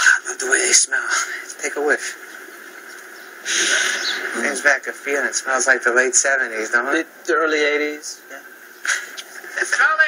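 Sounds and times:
low hiss: 0:00.0 - 0:10.0
person sniffing through nose: 0:03.5 - 0:04.1.

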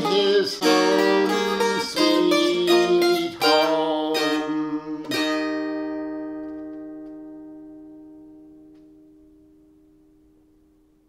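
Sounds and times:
dulcimer strummed chord ringing: 0:00.0 - 0:10.2.

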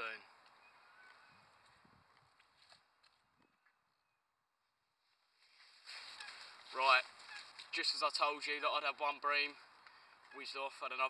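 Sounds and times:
faint soft clicks: 0:09.8 - 0:10.3.

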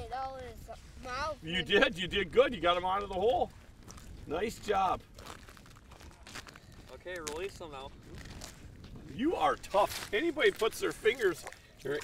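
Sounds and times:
faint rustling and crunching handling: 0:00.0 - 0:12.0.

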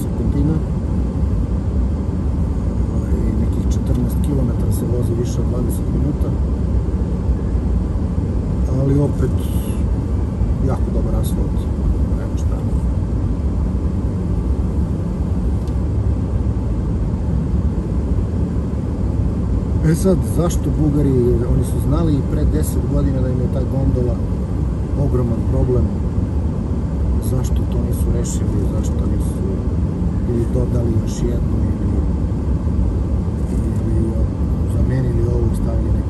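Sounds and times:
tyres and engine rumbling inside car: 0:00.0 - 0:36.0.

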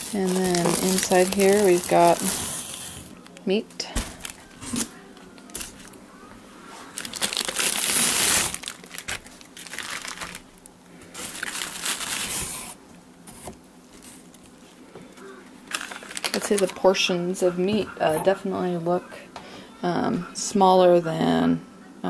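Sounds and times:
plastic packaging crinkling: 0:00.0 - 0:06.0, 0:06.9 - 0:12.8, 0:15.3 - 0:16.9.

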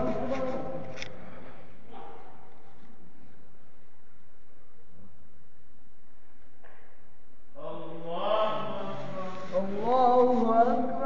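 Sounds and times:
man chanting recitation: 0:07.5 - 0:11.0.

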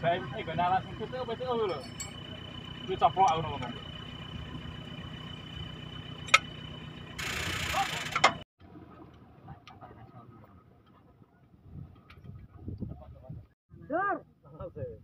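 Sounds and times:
metal clinks from hand tools: 0:01.7 - 0:02.2.

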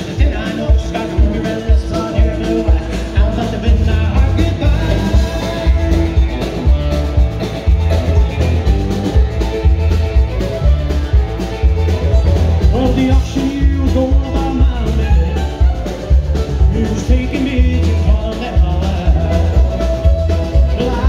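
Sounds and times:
live country band playing: 0:00.0 - 0:21.0.

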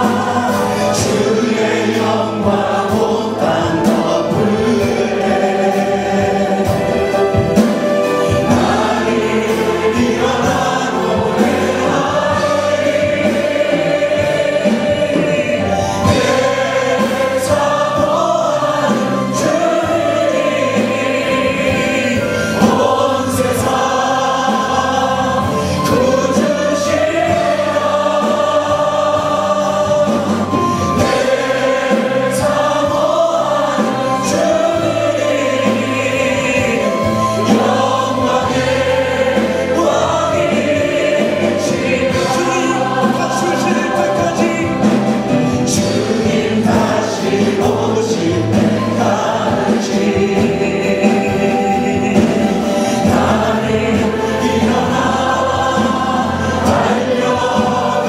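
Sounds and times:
group singing praise song: 0:00.0 - 0:58.0
instrumental accompaniment: 0:00.0 - 0:58.0.

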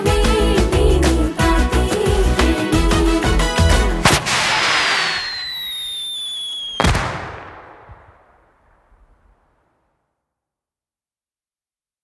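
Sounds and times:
music: 0:00.0 - 0:04.1
sharp crash: 0:04.0 - 0:05.4
falling high whistle: 0:04.4 - 0:06.9.

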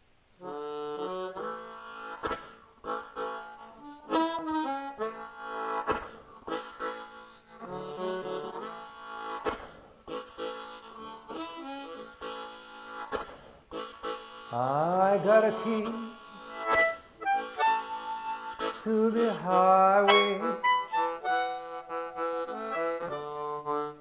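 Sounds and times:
blues harmonica: 0:00.4 - 0:24.0.

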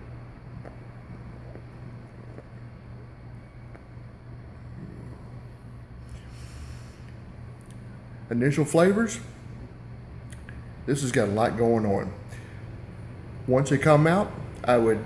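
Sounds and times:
low room hum: 0:00.0 - 0:15.0
hissing exhale: 0:04.7 - 0:07.4
man puffing on cigar: 0:04.8 - 0:07.3.

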